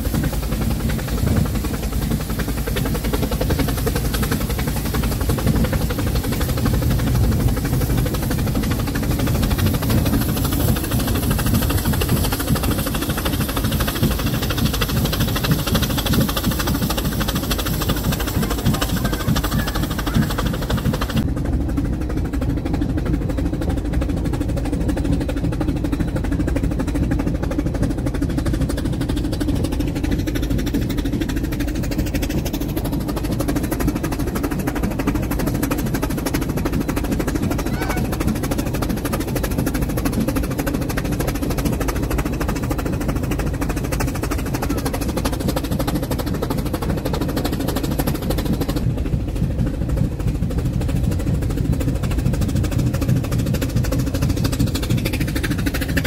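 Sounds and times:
high steam hiss: 0:00.0 - 0:21.2
steam locomotive rumble: 0:00.0 - 0:56.0.

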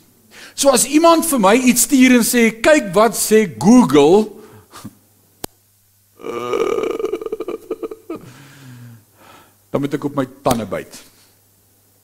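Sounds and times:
man laughing: 0:06.2 - 0:08.4.

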